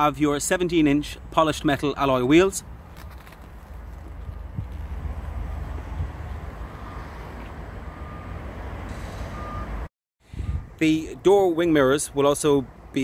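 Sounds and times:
man talking: 0:00.0 - 0:02.7, 0:10.8 - 0:13.0
vehicle reversing alarm beeps: 0:06.6 - 0:10.7.

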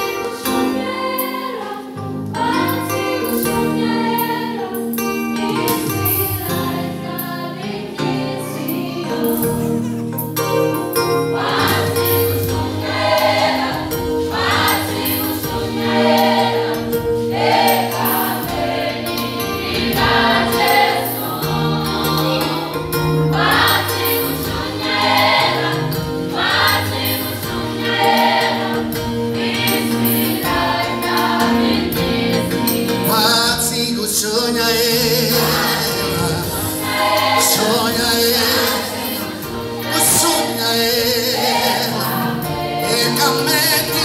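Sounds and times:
choir singing gospel: 0:00.0 - 0:44.0.

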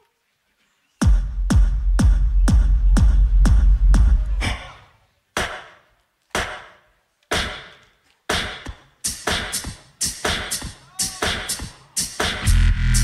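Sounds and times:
deep sub-bass boom: 0:01.0 - 0:04.4, 0:12.4 - 0:13.0
beatboxed beat hits: 0:01.0 - 0:04.8, 0:05.4 - 0:05.8, 0:06.4 - 0:13.0.

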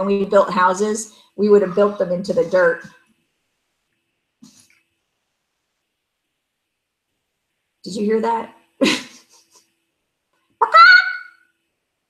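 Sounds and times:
chicken squawking: 0:10.6 - 0:11.5.

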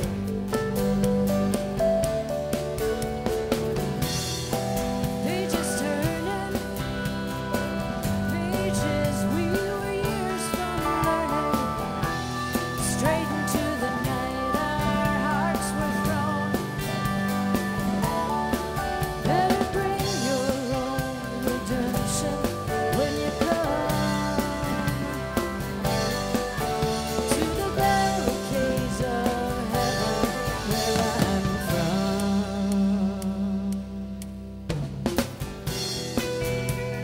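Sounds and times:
bass guitar: 0:00.0 - 0:37.0
drums keeping a steady beat: 0:00.0 - 0:37.0.

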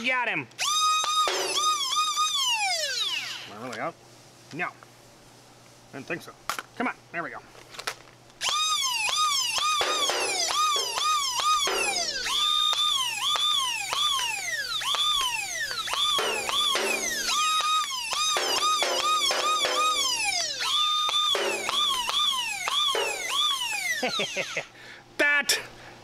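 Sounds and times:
laser gun sound effects: 0:09.1 - 0:24.0.

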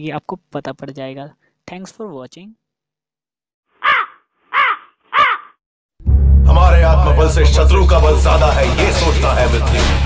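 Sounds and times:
crow cawing: 0:03.8 - 0:05.6.

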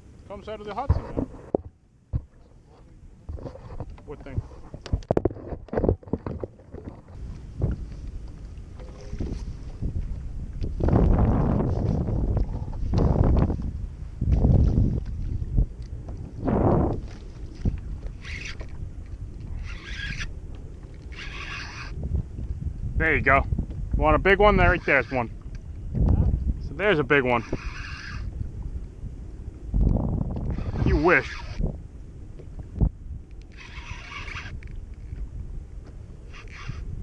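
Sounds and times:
wind buffeting microphone: 0:00.0 - 0:37.0
water lapping against kayak hull: 0:00.8 - 0:22.8, 0:23.5 - 0:37.0.

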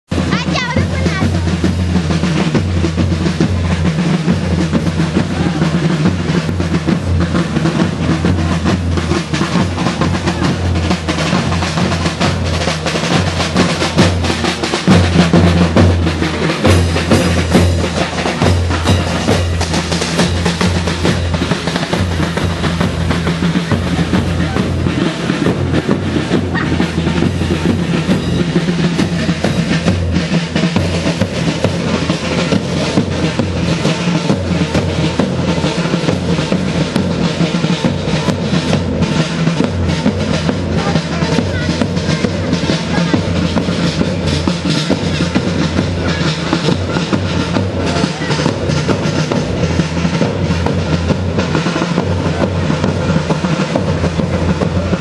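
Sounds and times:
bass drum: 0:00.1 - 0:55.0
fast drum roll: 0:00.1 - 0:55.0.

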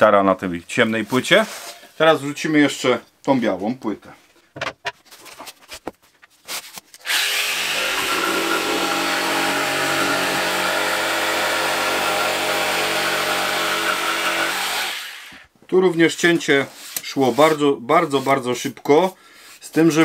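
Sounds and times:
jigsaw cutting particleboard: 0:07.0 - 0:15.4.

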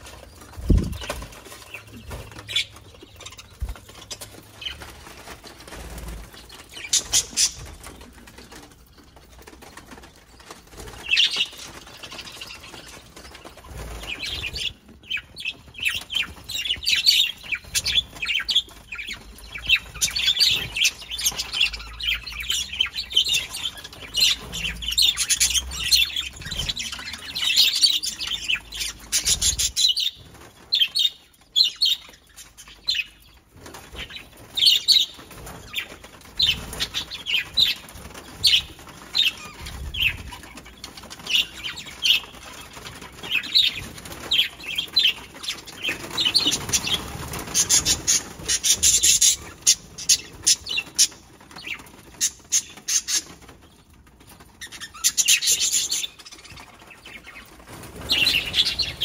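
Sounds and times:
budgerigars chattering and chirping: 0:06.3 - 0:08.0, 0:10.9 - 0:33.3, 0:33.9 - 0:53.5, 0:54.6 - 0:59.0.

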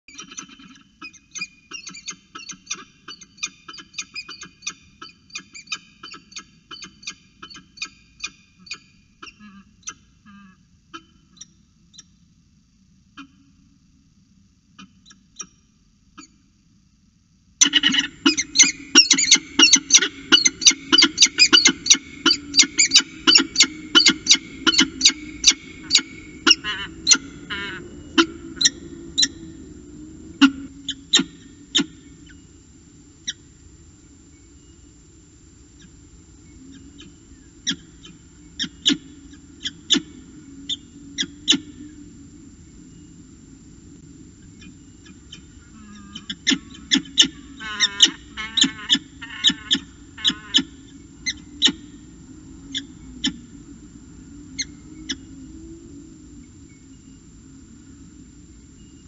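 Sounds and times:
steady low hum: 0:00.0 - 0:59.0
falcon calling: 0:17.6 - 0:32.6, 0:36.7 - 0:42.0, 0:44.5 - 0:52.1, 0:52.7 - 0:53.6.

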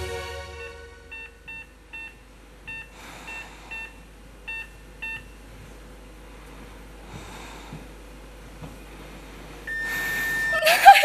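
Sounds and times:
song music: 0:00.0 - 0:01.5
patient monitor beeping: 0:00.6 - 0:05.5, 0:09.7 - 0:10.9.

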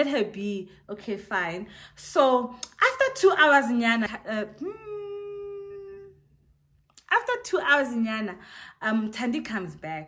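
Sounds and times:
woman humming: 0:04.5 - 0:06.3.

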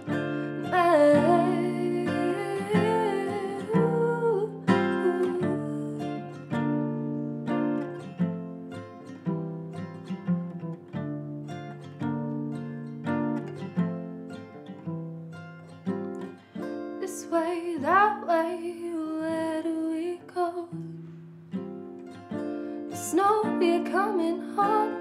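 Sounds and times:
acoustic guitar picking: 0:00.0 - 0:18.6
wordless singing: 0:00.7 - 0:06.3.

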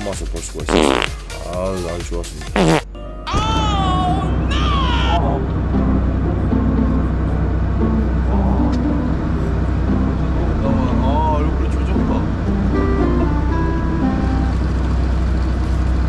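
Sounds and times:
faint background music: 0:00.0 - 0:14.7
boat engine droning: 0:03.6 - 0:16.0.

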